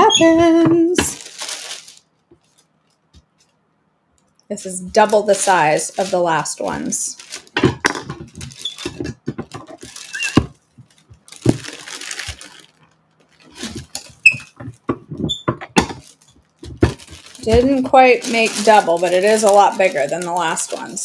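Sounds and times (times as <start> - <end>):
plastic bag crinkling: 0.1 - 3.6, 4.2 - 21.0.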